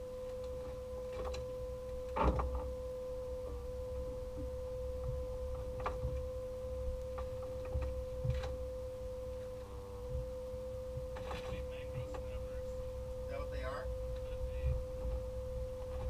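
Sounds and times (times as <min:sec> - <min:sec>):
electric whine: 0:00.0 - 0:16.0
low rumble: 0:00.0 - 0:16.0.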